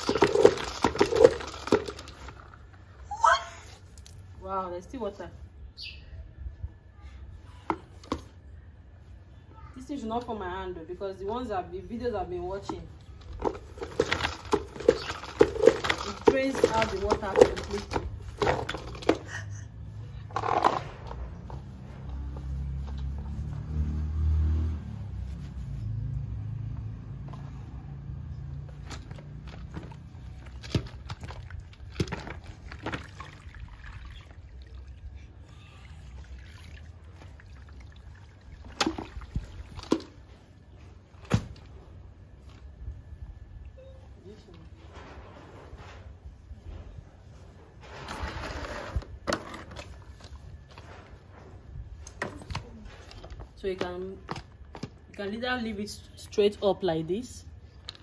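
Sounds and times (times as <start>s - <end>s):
mop and bucket clicks and knocks: 13.3s - 19.3s
water sounds: 32.5s - 40.1s.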